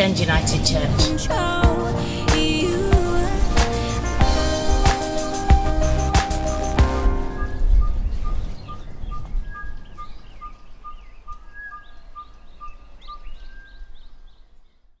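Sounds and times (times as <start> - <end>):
quick higher bird chirps: 4.9 - 12.3.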